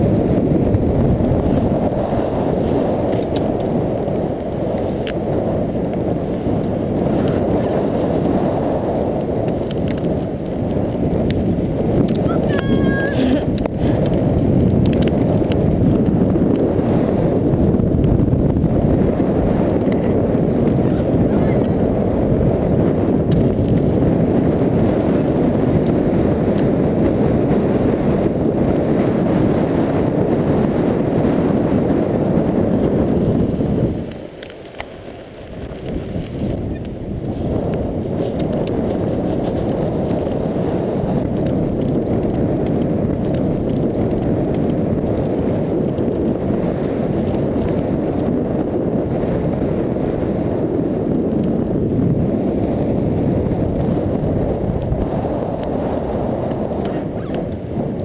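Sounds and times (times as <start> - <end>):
wind: 0.0 - 58.0
high-pitched tone: 12.3 - 13.4
land yacht rolling over sand: 13.6 - 49.8.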